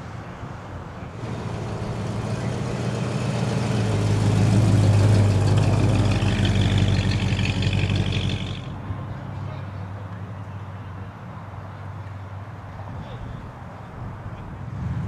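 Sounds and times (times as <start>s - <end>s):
car engine low rumble: 0.2s - 9.2s
higher whine: 1.2s - 8.7s.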